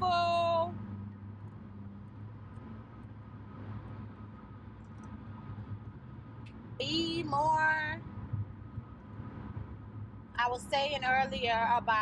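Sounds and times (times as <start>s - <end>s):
car engine hum: 0.0s - 12.0s.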